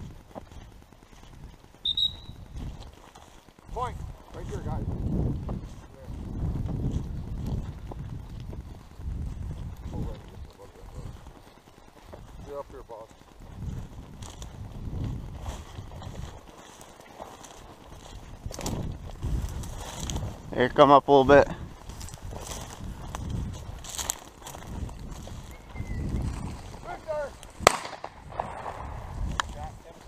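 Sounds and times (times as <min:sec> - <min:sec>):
footsteps through dry grass: 0:00.0 - 0:30.0
grass brushing against microphone: 0:00.0 - 0:30.0.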